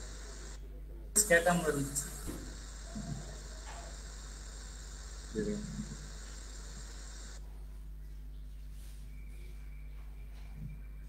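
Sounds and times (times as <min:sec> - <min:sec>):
open microphone hiss: 0:00.0 - 0:07.7
low mains hum: 0:00.0 - 0:11.0.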